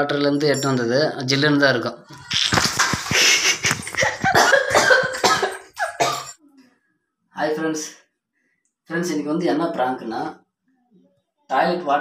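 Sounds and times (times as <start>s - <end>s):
woman coughing: 4.0s - 6.4s.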